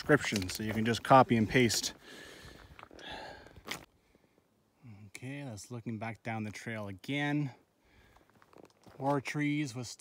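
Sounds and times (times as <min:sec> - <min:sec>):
person breathing: 0:02.0 - 0:05.1, 0:07.8 - 0:08.4.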